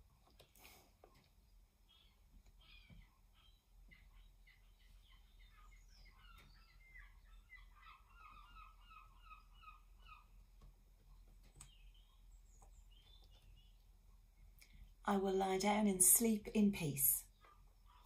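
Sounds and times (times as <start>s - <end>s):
faint bird chirping: 0.3s - 15.0s, 17.2s - 18.0s.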